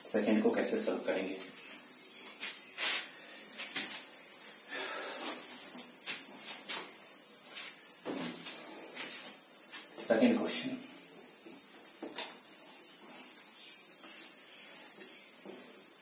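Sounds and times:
crickets chirping: 0:00.0 - 0:16.0.

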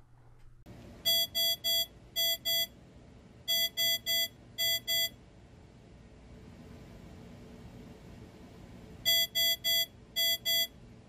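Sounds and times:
buzzy alarm beeps: 0:01.0 - 0:02.8, 0:03.5 - 0:05.2, 0:09.0 - 0:10.8.

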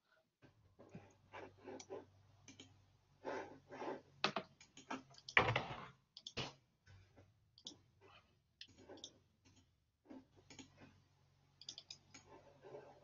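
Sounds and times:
computer keyboard typing: 0:11.6 - 0:12.3.

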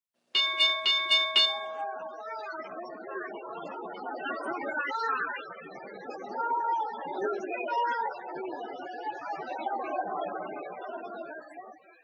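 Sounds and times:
bell struck rapidly: 0:00.4 - 0:02.5.

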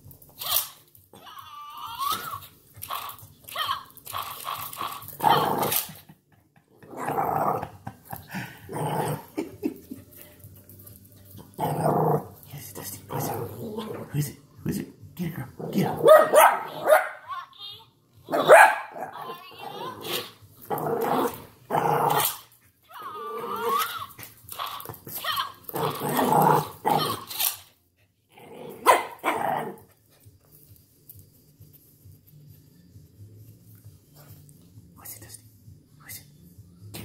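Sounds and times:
dog barking and growling: 0:00.4 - 0:10.0, 0:11.4 - 0:14.4, 0:15.6 - 0:17.3, 0:18.3 - 0:27.7, 0:28.3 - 0:30.0.

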